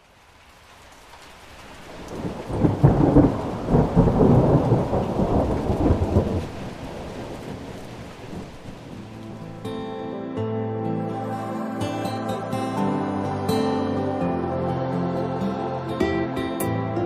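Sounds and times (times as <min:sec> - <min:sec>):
steady rain: 0:00.0 - 0:10.4
thunder rolling: 0:01.7 - 0:09.7.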